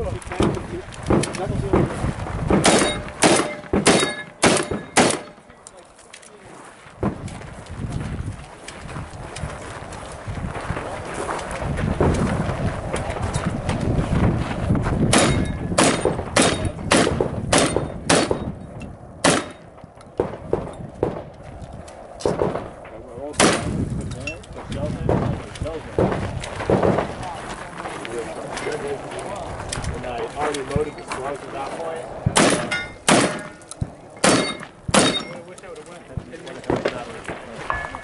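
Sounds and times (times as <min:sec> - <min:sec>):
gunshots: 0:00.3 - 0:05.5, 0:15.1 - 0:18.6, 0:19.2 - 0:21.3, 0:22.2 - 0:22.8, 0:23.4 - 0:23.8, 0:25.0 - 0:27.4, 0:32.2 - 0:35.5, 0:36.1 - 0:38.0.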